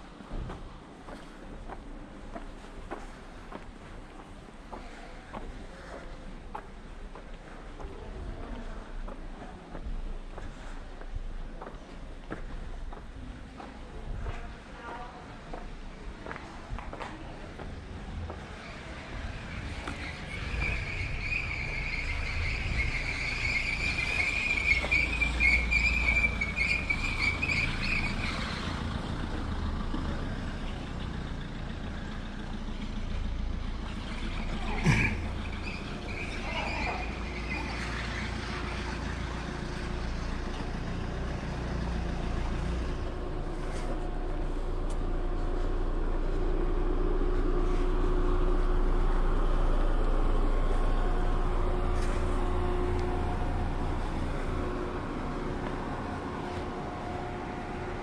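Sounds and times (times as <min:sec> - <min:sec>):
low outdoor rumble: 0:00.0 - 0:58.0
vehicle engine humming: 0:00.0 - 0:58.0.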